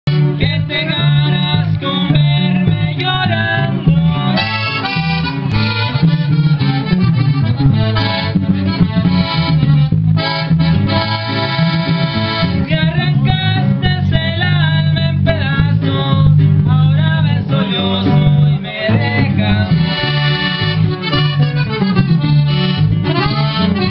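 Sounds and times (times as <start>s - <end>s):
electric bass line: 0.0s - 23.9s
accordion melody: 0.1s - 23.9s
electric guitar: 0.1s - 23.9s.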